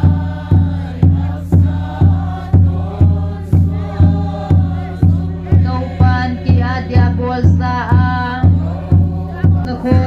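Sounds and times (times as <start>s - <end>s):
congregation singing a hymn: 0.0s - 10.0s
deep barrel drum beats: 0.0s - 10.0s.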